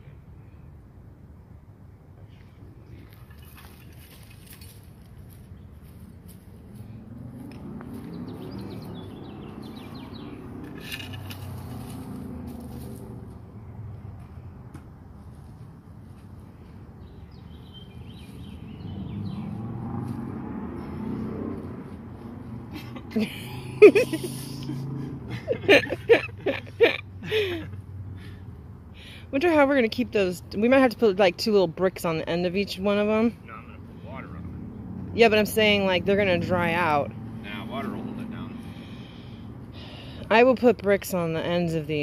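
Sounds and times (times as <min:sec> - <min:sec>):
rake scraping dry soil: 0:10.6 - 0:13.1.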